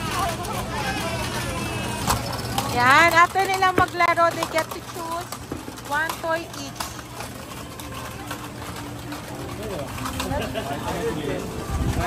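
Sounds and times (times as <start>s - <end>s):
chatter of voices: 0.0s - 12.0s
faint music: 0.0s - 12.0s.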